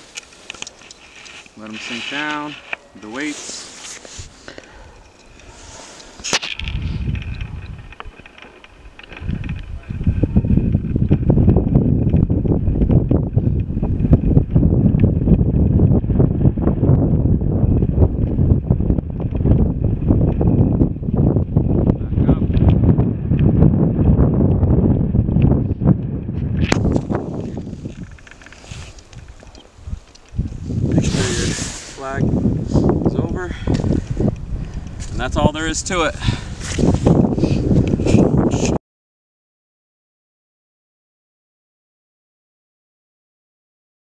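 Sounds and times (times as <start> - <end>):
wind buffeting microphone: 0.0 - 38.8
sharp clicks: 27.8 - 30.6.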